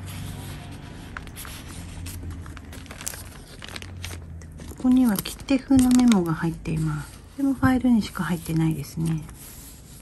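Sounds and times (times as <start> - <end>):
paper rustling and sliding: 0.0 - 5.2, 5.8 - 10.0.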